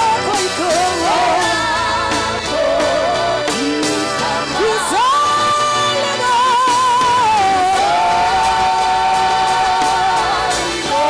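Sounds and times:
women singing in harmony: 0.0s - 11.0s.

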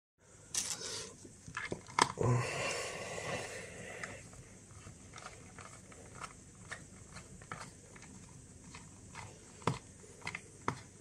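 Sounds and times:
rustling and scraping: 4.0s - 11.0s.

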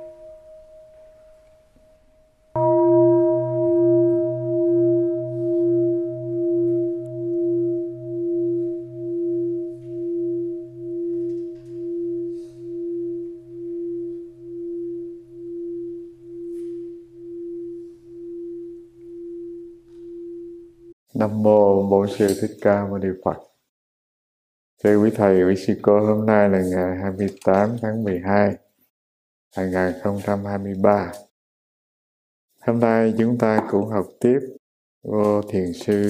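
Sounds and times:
large bell ringing: 0.0s - 20.6s.

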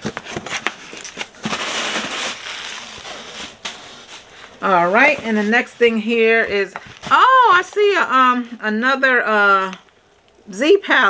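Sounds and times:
packaging crinkling and rustling: 0.0s - 8.0s.

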